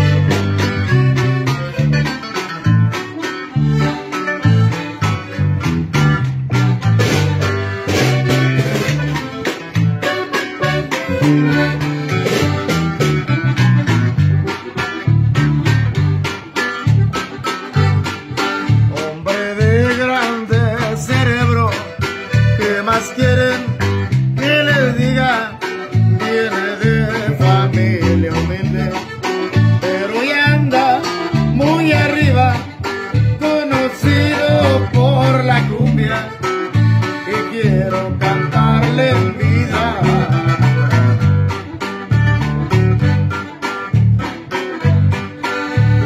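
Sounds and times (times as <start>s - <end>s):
acoustic guitar playing: 0.0s - 46.0s.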